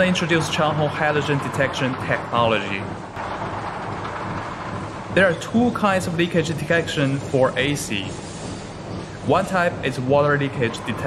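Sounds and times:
factory machinery rumble and hiss: 0:00.0 - 0:11.0.

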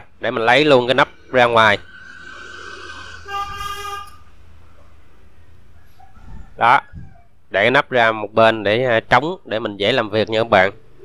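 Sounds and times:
vehicle horn honk: 0:03.0 - 0:04.3.

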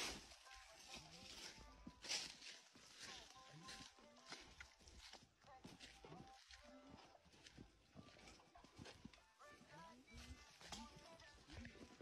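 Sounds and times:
faint voices: 0:00.0 - 0:12.0
footsteps on dry dirt path: 0:00.0 - 0:12.0.

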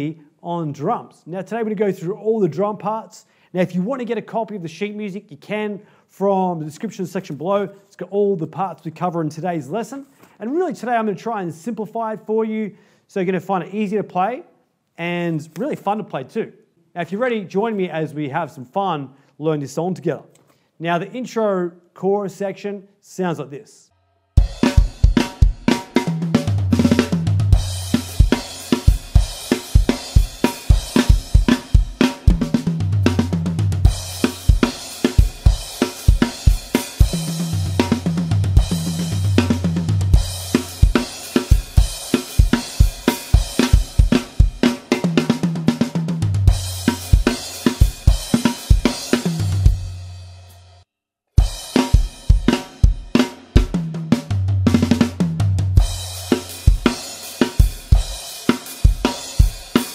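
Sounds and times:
backing track with low notes: 0:24.4 - 0:50.0, 0:53.7 - 0:57.2
rock drum groove: 0:24.4 - 0:50.8, 0:51.4 - 0:59.9.

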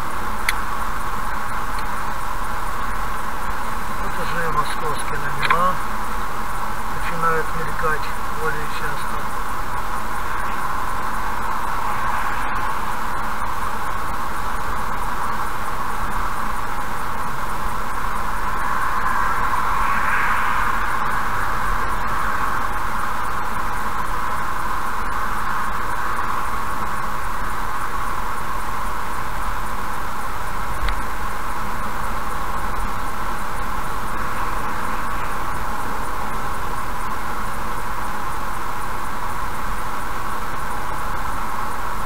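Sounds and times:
road and tyre noise: 0:00.0 - 0:42.0
car passing alongside: 0:10.0 - 0:16.4, 0:17.9 - 0:26.8.

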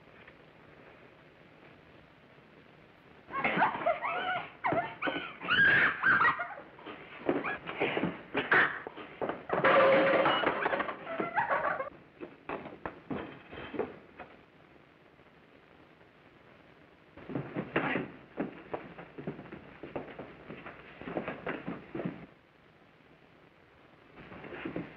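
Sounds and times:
knocks and thumps: 0:06.8 - 0:11.6, 0:12.2 - 0:14.4, 0:17.2 - 0:22.3.

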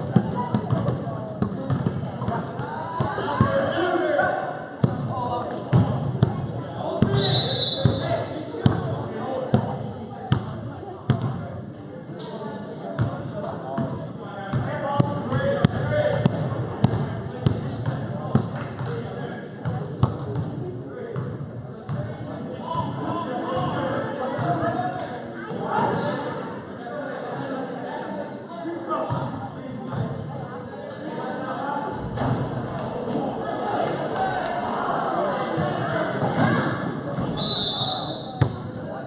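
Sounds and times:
spectators talking: 0:00.0 - 0:39.0.

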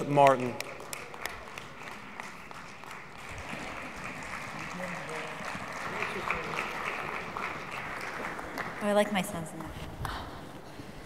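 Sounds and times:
audience applauding: 0:00.0 - 0:09.3.

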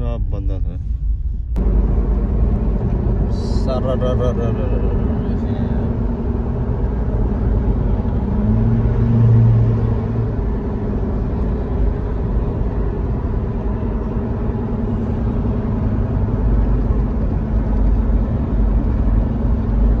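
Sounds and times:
car road and engine noise: 0:00.0 - 0:20.0
low hum: 0:00.0 - 0:20.0.

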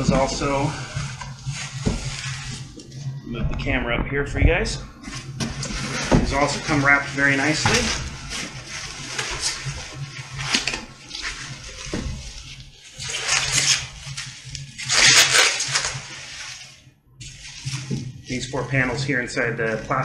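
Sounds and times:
packing wrap rustling and crinkling: 0:05.0 - 0:20.0.

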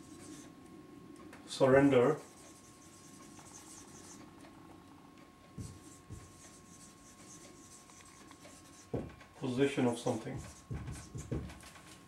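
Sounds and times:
marker scratching on whiteboard: 0:00.0 - 0:00.5, 0:02.2 - 0:04.3, 0:05.6 - 0:09.2, 0:10.3 - 0:11.7.

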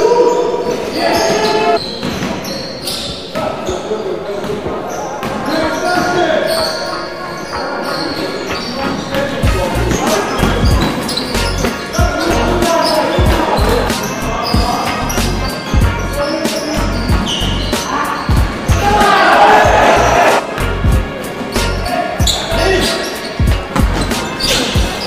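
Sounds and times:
players calling out: 0:04.9 - 0:25.0
music with heavy bass beat: 0:09.4 - 0:16.2, 0:16.8 - 0:25.0.

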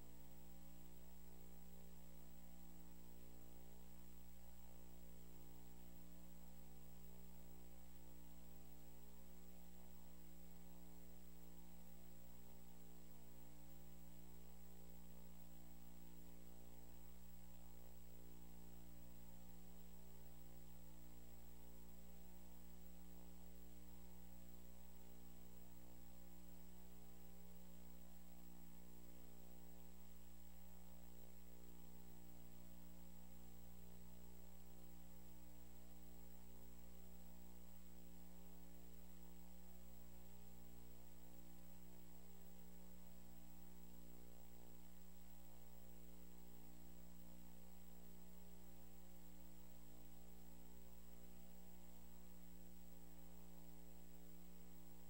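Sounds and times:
electrical mains hum: 0:00.0 - 0:55.0
faint high whine: 0:00.0 - 0:55.0.

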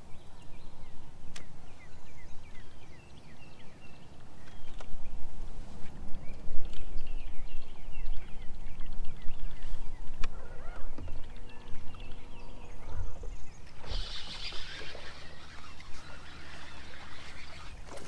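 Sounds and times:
birds chirping: 0:00.0 - 0:18.0.

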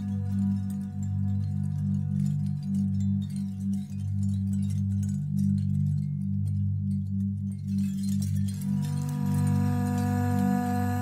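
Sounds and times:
ambient music with low drone tones: 0:00.0 - 0:11.0.

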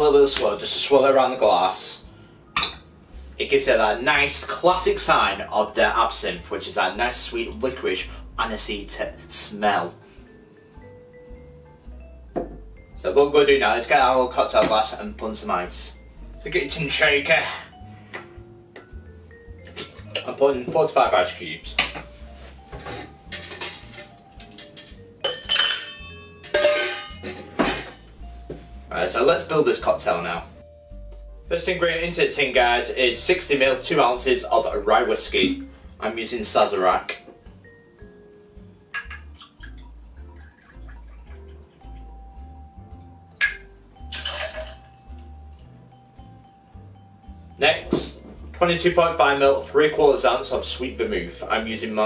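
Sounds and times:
soft background music: 0:00.0 - 0:52.0
ice cubes clinking into metal tin: 0:22.9 - 0:27.9, 0:43.4 - 0:44.9
liquid pouring from bottle: 0:39.1 - 0:41.6, 0:44.1 - 0:44.9
liquid splashing over ice: 0:39.1 - 0:42.1, 0:44.1 - 0:45.1.

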